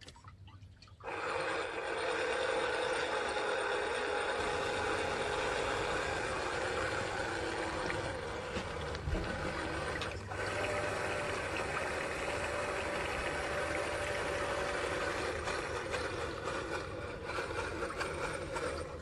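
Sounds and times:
paddle wheels churning water: 0:01.0 - 0:19.0
small motor whining: 0:01.0 - 0:19.0.

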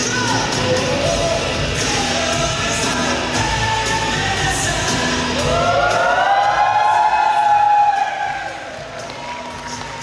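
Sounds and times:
stage music: 0:00.0 - 0:10.0.

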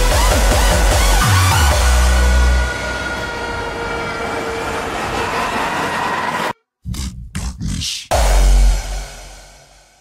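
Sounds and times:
heavy bass kick: 0:06.9 - 0:10.0.

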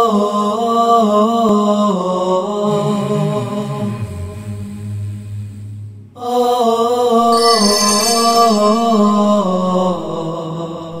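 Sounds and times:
slow vocal chant: 0:00.0 - 0:05.4, 0:06.0 - 0:11.0.

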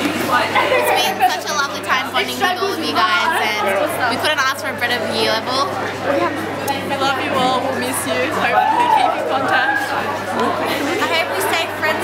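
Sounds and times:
girls chattering: 0:00.0 - 0:12.0.

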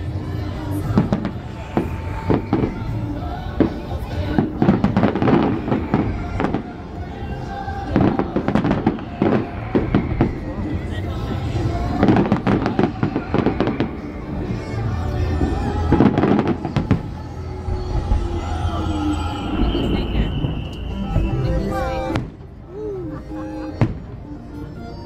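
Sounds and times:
fireworks bursting and crackling: 0:00.0 - 0:22.8.

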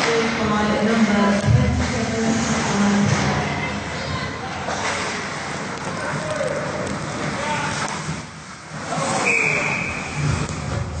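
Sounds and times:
skates scraping on ice: 0:00.0 - 0:11.0
whistle blast: 0:09.2 - 0:10.2.

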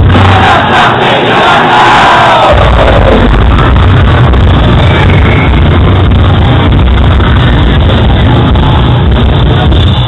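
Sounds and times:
crowd noise: 0:00.0 - 0:10.0
distorted heavy metal band: 0:00.0 - 0:10.0.

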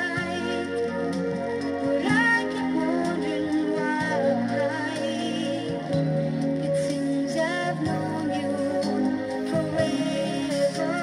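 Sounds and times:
pop song from vinyl record: 0:00.0 - 0:11.0.

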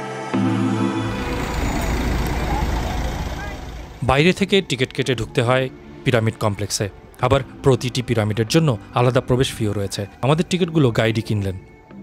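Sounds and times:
low rumble: 0:01.0 - 0:04.6.

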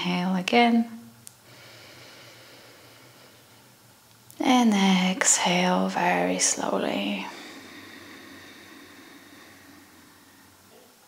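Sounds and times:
soft breathy exhale: 0:01.5 - 0:03.8, 0:07.3 - 0:10.8.

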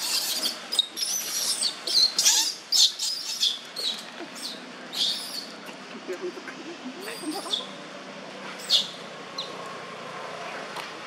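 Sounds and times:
infant monkey squeaking: 0:00.0 - 0:05.6, 0:07.0 - 0:07.8.

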